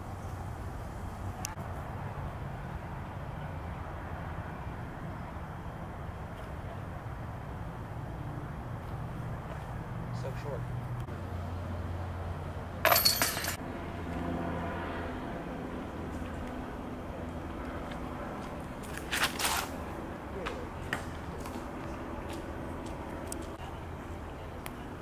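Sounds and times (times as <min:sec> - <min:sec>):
distant road traffic hum: 0:00.0 - 0:25.0
clinking clatter: 0:12.8 - 0:13.6.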